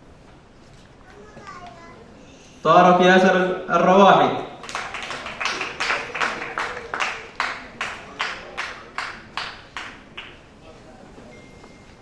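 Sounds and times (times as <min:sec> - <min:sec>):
murmur of voices in a hall: 0:00.6 - 0:12.0.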